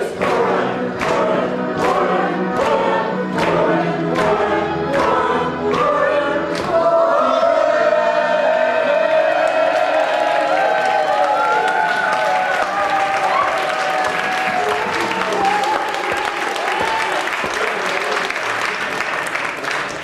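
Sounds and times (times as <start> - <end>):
backing music with steady beat: 0.0 - 8.4
group singing in chorus: 0.0 - 11.3.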